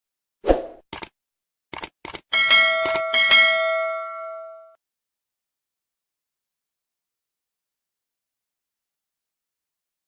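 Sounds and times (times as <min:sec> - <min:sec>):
notification bell dinging: 0:02.4 - 0:04.8.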